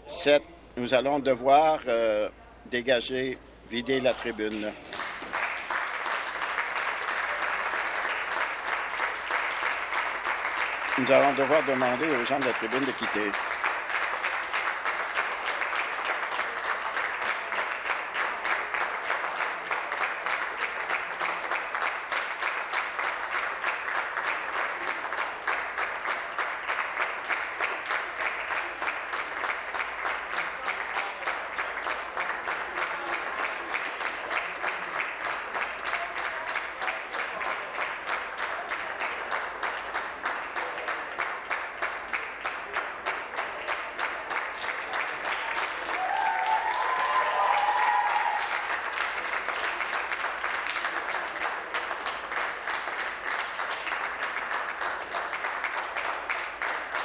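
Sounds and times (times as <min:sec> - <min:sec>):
crowd applauding: 0:03.7 - 0:57.0.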